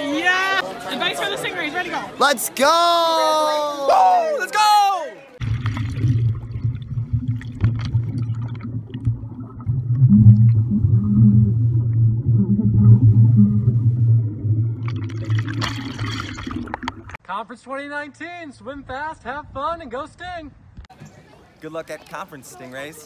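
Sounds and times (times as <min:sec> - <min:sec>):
bubbling: 0:05.4 - 0:17.2
underwater rumble: 0:05.4 - 0:17.2.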